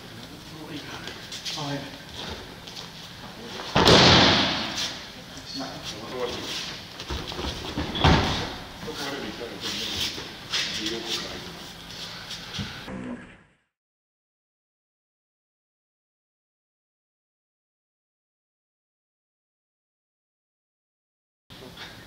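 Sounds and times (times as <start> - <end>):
body thudding onto mat: 3.7 - 4.7
breakfall slap: 3.7 - 4.9
knocks and scuffs on mat: 7.0 - 8.6.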